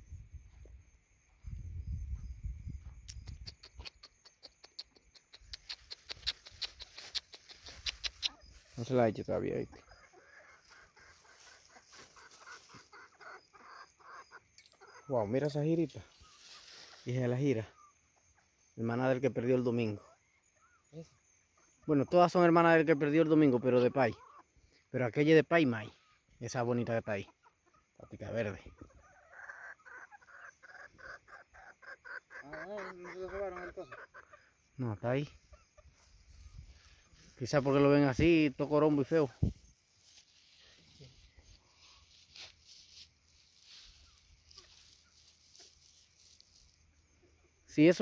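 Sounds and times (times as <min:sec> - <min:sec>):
chickens clucking: 0:03.1 - 0:18.6, 0:19.7 - 0:24.9, 0:25.8 - 0:47.9.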